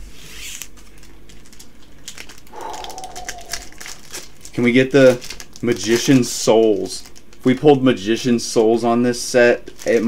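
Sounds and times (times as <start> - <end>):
foil wrapper crinkling and tearing: 0.4 - 2.5, 3.3 - 7.7, 8.6 - 10.0
faint short whine: 2.5 - 4.3.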